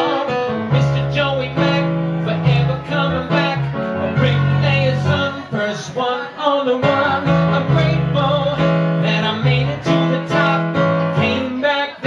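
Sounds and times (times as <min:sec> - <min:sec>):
keyboard chords: 0:00.0 - 0:12.0
man singing into microphone: 0:00.0 - 0:12.0.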